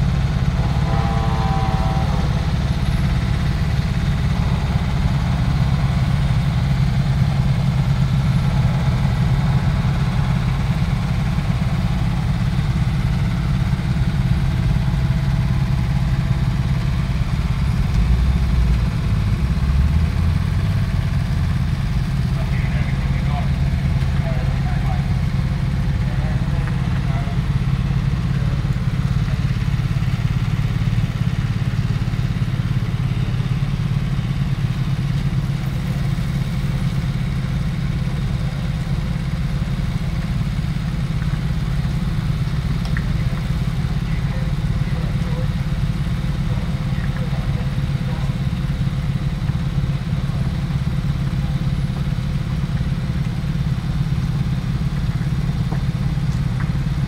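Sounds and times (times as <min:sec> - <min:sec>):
truck diesel engines droning: 0:00.0 - 0:57.0.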